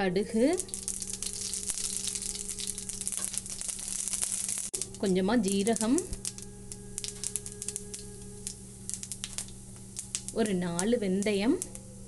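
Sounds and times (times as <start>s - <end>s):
seeds sizzling in hot oil: 0.3s - 12.0s.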